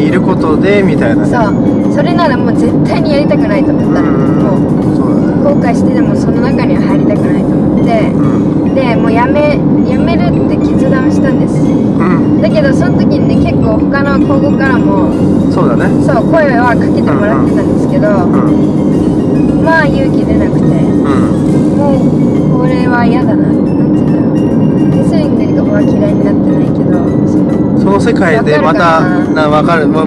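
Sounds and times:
road and engine noise: 0:00.0 - 0:30.0
woman talking: 0:01.3 - 0:11.7, 0:12.4 - 0:15.1, 0:16.0 - 0:18.5, 0:19.6 - 0:21.0, 0:21.6 - 0:23.7, 0:24.8 - 0:27.5.

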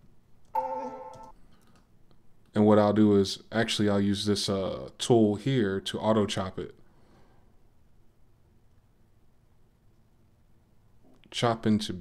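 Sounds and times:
electronic note: 0:00.6 - 0:01.3.

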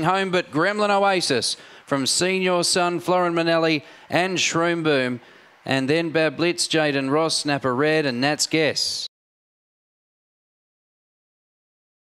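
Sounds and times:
man's voice: 0:00.0 - 0:09.1.

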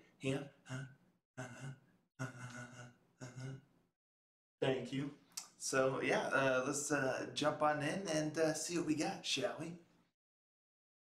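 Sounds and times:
man's soft utterances: 0:00.7 - 0:03.6.

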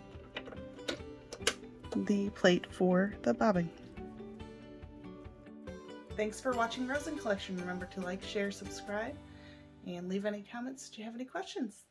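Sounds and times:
soft background music: 0:00.0 - 0:11.9.

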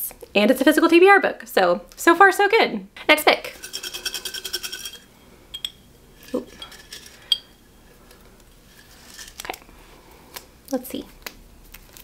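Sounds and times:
paper slips rattling in glass jar: 0:03.5 - 0:05.1.

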